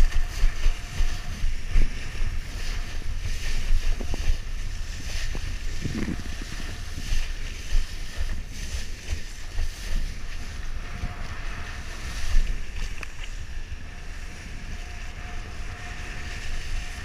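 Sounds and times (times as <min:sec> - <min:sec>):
faint thin whine: 0:00.0 - 0:17.0
wind buffeting microphone: 0:00.0 - 0:17.0.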